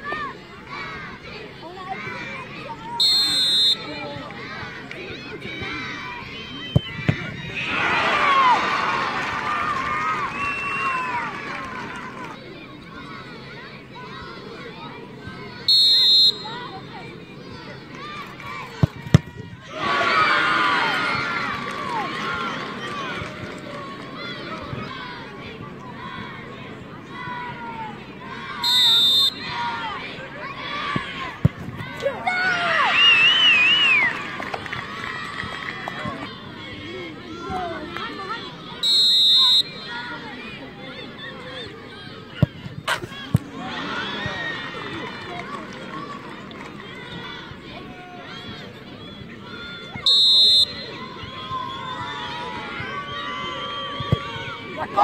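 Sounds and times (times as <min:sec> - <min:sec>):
spectators chattering: 0:00.0 - 0:55.0
football kick thud: 0:06.7 - 0:07.4, 0:18.8 - 0:19.4, 0:31.4 - 0:31.9.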